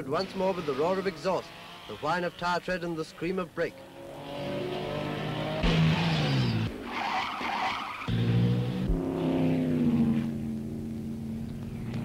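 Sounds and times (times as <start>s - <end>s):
racing car engines passing: 0.0s - 11.0s.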